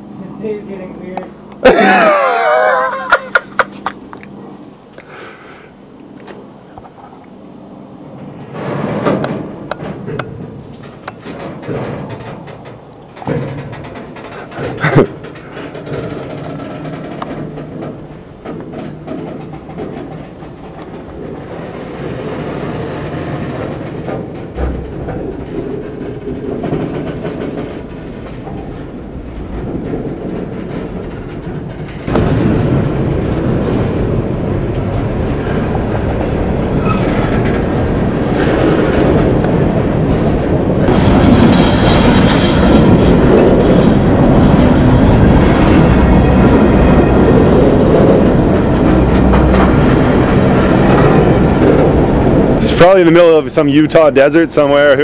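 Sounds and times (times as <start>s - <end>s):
freight train wheels on rails: 8.2s - 55.0s.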